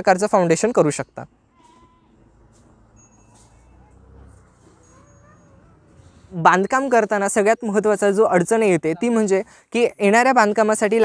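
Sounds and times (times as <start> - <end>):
faint outdoor background: 0.0 - 11.0
faint animal call: 1.5 - 2.5, 3.2 - 6.4.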